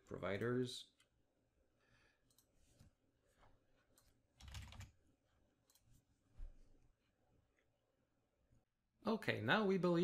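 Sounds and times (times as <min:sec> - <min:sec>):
computer keyboard keystrokes: 0:04.0 - 0:05.0.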